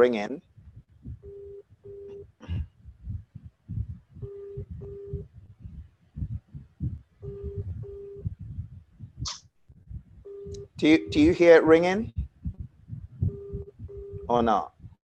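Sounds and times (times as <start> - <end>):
low irregular rumbling: 0.0 - 15.0
telephone ringback tone: 10.3 - 11.2.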